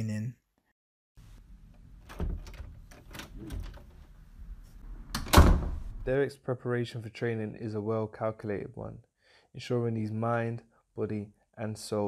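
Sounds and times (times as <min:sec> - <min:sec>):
door shutting with heavy thud: 0:02.0 - 0:04.1, 0:05.1 - 0:06.0.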